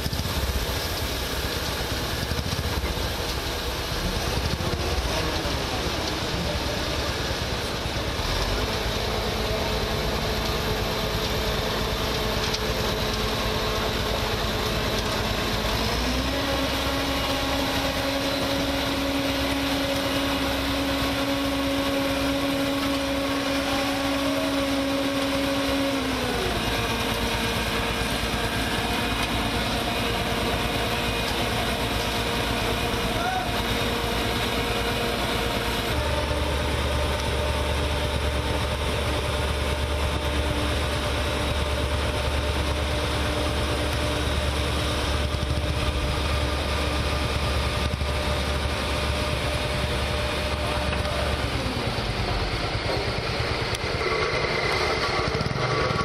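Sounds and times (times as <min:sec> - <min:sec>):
diesel engines running: 0:00.0 - 0:56.0.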